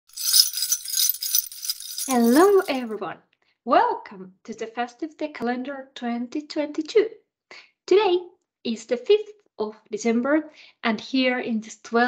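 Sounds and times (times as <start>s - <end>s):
jingle bells shaken: 0.0s - 2.9s.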